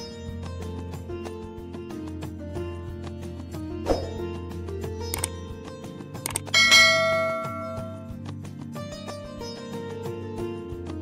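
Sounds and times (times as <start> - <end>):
quick mouse clicks: 6.3 - 6.5
bright bell chime: 6.6 - 8.1.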